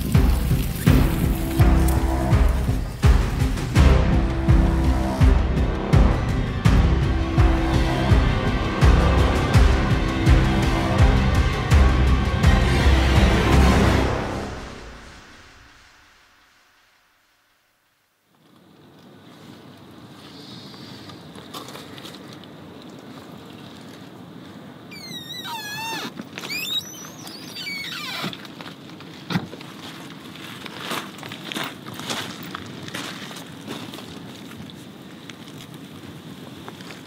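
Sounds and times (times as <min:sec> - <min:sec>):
background music: 0:00.0 - 0:16.2
night ambience: 0:00.0 - 0:21.4.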